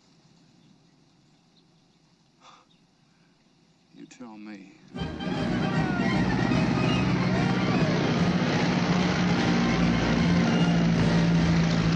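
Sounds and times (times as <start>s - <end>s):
propeller aircraft engine droning: 4.9s - 11.9s.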